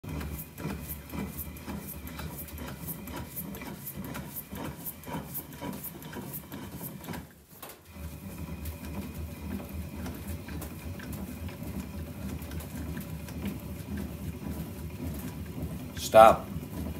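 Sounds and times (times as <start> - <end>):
rollers clicking and rubbing: 0.0 - 16.9.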